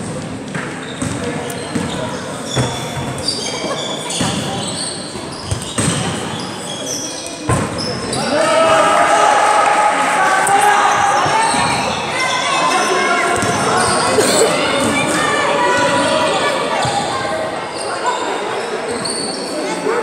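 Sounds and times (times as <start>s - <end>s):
basketball bouncing in gym: 0.0s - 3.4s, 4.1s - 6.4s, 13.4s - 14.0s.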